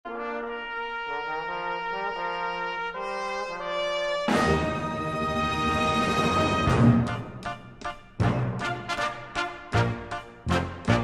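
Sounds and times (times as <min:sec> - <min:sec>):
brass instruments playing chords: 0:00.1 - 0:11.0.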